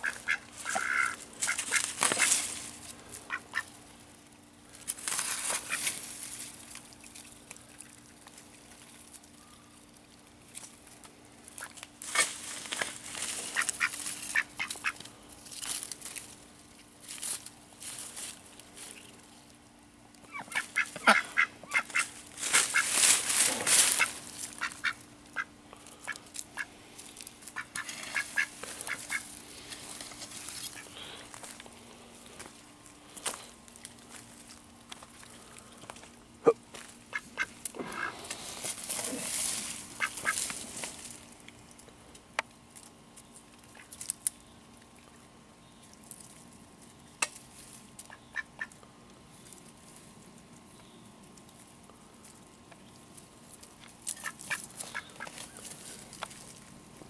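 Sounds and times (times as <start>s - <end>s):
ducks quacking: 0.0s - 2.4s, 3.2s - 3.7s, 13.4s - 15.0s, 20.3s - 26.7s, 27.5s - 29.4s, 30.6s - 31.1s, 37.1s - 38.2s, 39.9s - 40.4s, 48.1s - 48.8s, 54.2s - 55.5s
rustling noise: 21.8s - 24.8s, 38.1s - 41.3s.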